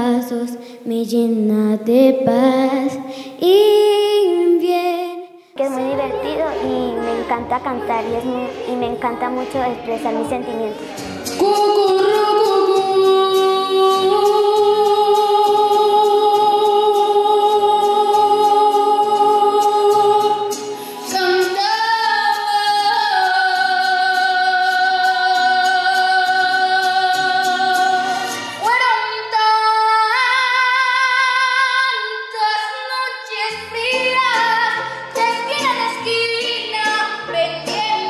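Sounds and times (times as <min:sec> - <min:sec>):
boy singing: 0:00.0 - 0:38.0
girl singing into microphone: 0:00.0 - 0:38.0.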